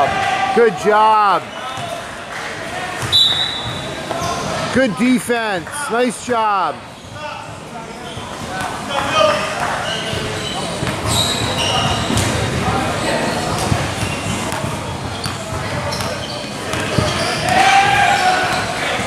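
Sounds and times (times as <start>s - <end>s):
voices echoing in a hall: 0.0s - 19.0s
basketball bouncing on hard court: 10.8s - 12.7s, 13.5s - 17.5s.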